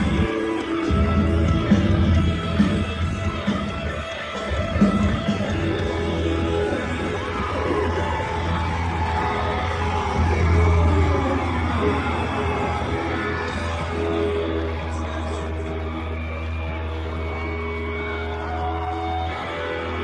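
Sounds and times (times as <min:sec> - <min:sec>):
crowd cheering: 0:00.0 - 0:20.0
live rock band: 0:00.0 - 0:20.0.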